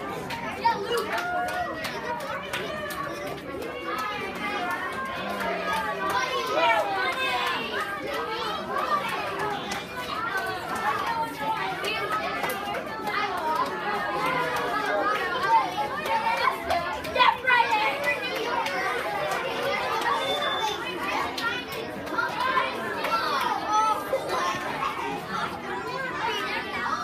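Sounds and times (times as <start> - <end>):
crowd chattering: 0.0 - 27.0.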